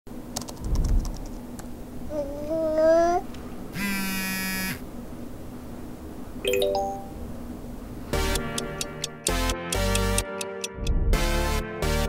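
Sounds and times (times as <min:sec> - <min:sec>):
phone buzzing: 0:03.8 - 0:04.8.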